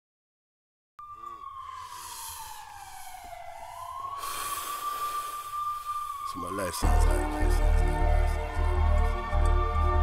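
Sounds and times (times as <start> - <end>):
hiss: 4.2 - 6.2.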